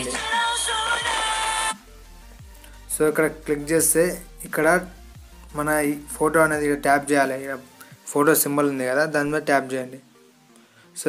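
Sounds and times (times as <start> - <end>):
loud held melody: 0.0 - 2.0
low beat: 0.0 - 6.8.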